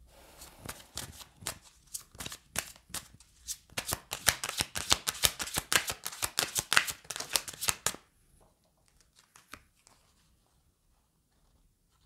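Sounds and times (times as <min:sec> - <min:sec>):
cards being shuffled: 0:00.6 - 0:08.0, 0:08.8 - 0:10.1.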